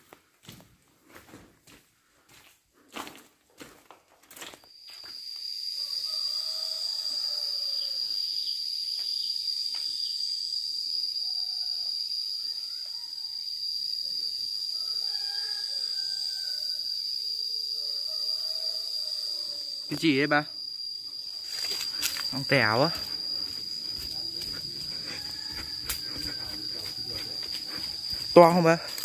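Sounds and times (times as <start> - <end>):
faint wavering insect calls: 4.3 - 29.0
high-pitched insect drone: 4.3 - 29.0.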